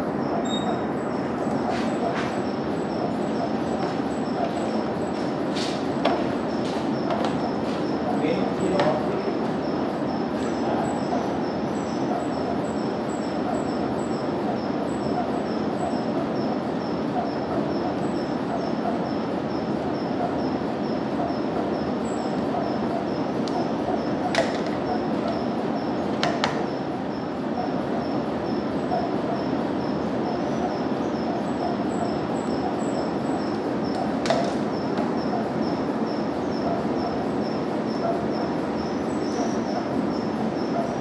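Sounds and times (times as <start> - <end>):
lab ware clicking: 23.4 - 26.8, 32.5 - 35.4.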